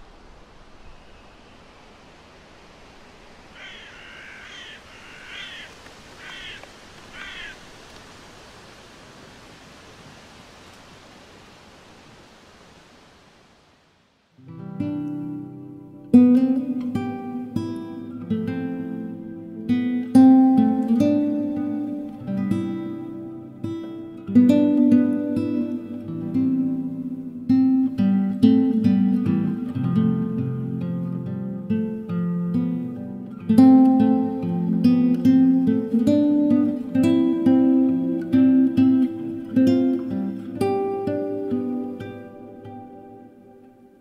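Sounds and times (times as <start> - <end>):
steady outdoor hiss: 0.0 - 44.0
bird calls: 3.5 - 8.0
plucked classical guitar: 14.4 - 43.8.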